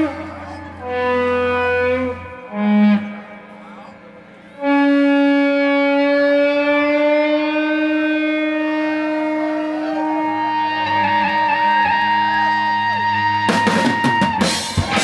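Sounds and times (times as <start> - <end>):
electric guitar notes: 0.0 - 15.0.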